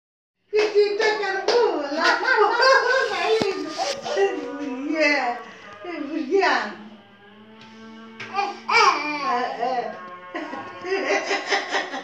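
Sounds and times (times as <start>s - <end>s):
sharp claps: 1.4s - 2.2s.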